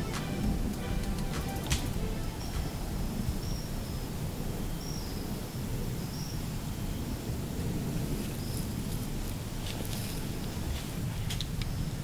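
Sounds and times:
low rumble: 0:00.0 - 0:04.8.

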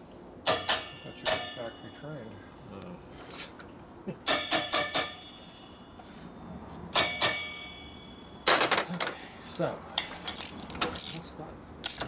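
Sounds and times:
metal parts clinking: 0:10.0 - 0:12.0.

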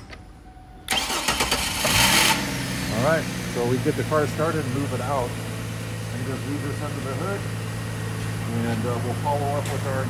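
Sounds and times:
engine cranking and starting: 0:00.9 - 0:02.5.

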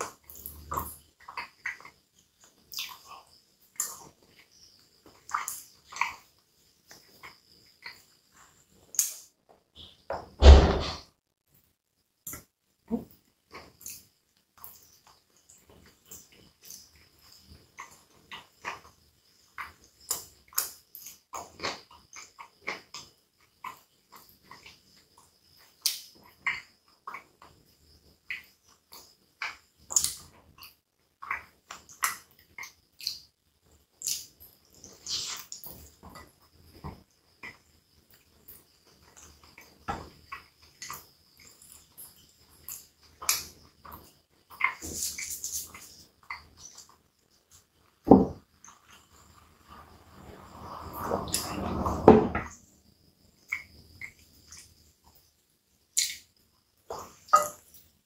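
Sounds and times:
person chewing food: 0:00.0 - 0:09.3.

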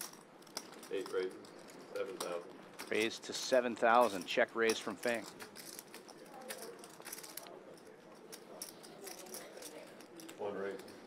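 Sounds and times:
poker chips clicking: 0:04.1 - 0:07.5.

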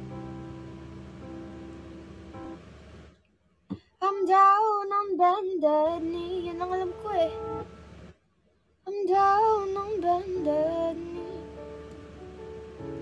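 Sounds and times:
instrumental music: 0:00.0 - 0:03.1.

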